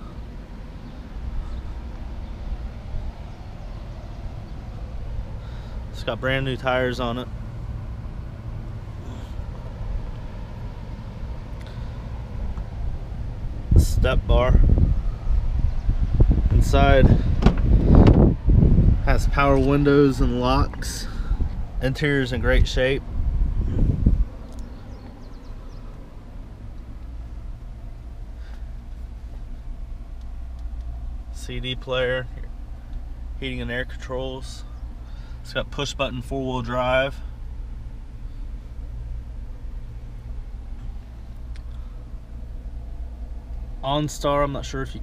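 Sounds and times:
low background hum: 0:00.0 - 0:45.0
low outdoor rumble: 0:00.0 - 0:45.0.

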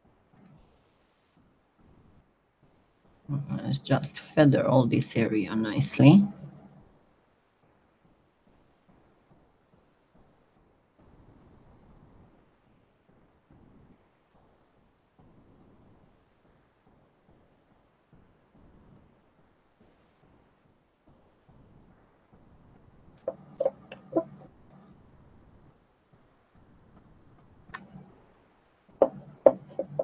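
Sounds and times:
fingers rubbing clay: 0:23.3 - 0:24.4, 0:29.0 - 0:30.0.

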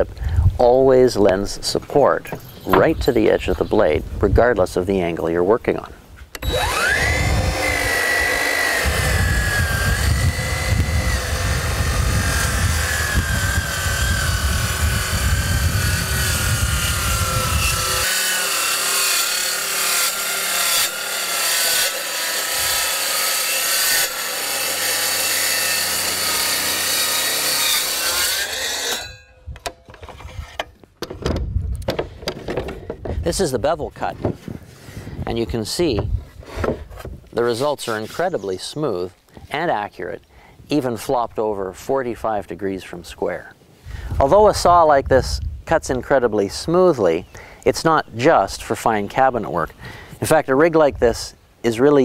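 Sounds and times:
track saw cutting: 0:06.4 - 0:29.3.

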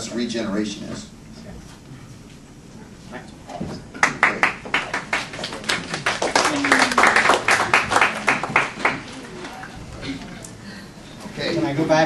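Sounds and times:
small audience applauding: 0:03.9 - 0:10.2.

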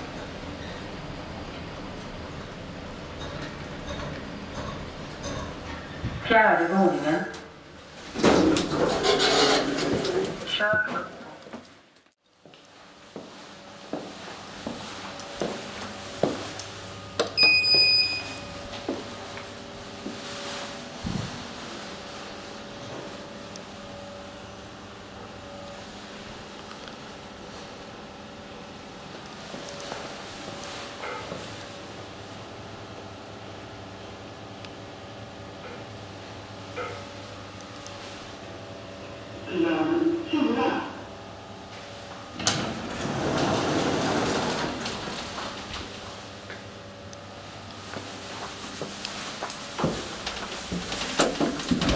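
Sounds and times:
elevator doors sliding: 0:00.0 - 0:06.2, 0:08.0 - 0:11.3, 0:42.2 - 0:46.4
footsteps: 0:12.4 - 0:16.6, 0:18.7 - 0:21.7, 0:47.8 - 0:51.9
elevator door click: 0:42.4 - 0:46.0.

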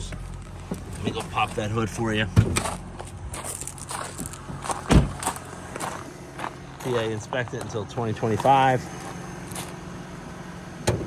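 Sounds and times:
footsteps crunching on gravel: 0:00.0 - 0:09.8
deep thump: 0:04.8 - 0:05.3.

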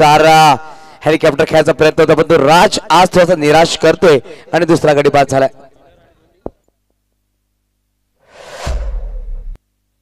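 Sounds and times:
transition whoosh effect: 0:08.2 - 0:09.6
deep boom: 0:08.4 - 0:09.6.

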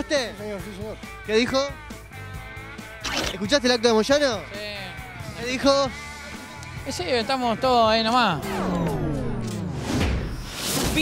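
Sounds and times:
rising whoosh: 0:08.2 - 0:10.8
tape stop effect: 0:08.3 - 0:10.4.

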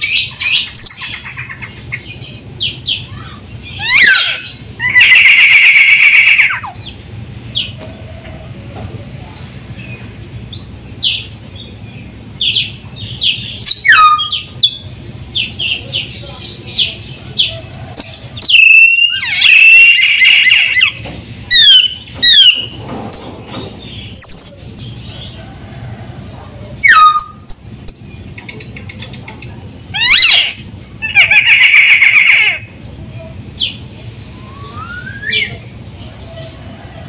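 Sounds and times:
harsh buzzy bird chattering: 0:00.0 - 0:07.0, 0:12.4 - 0:23.3, 0:26.4 - 0:32.8
myna whistling song: 0:18.5 - 0:20.8, 0:34.3 - 0:35.6.

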